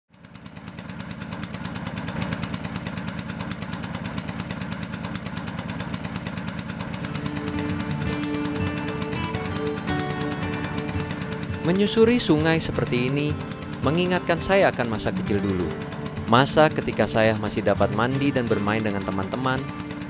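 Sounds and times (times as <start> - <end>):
boat engine chugging: 0.2 - 20.0
music with sustained notes: 6.9 - 20.0.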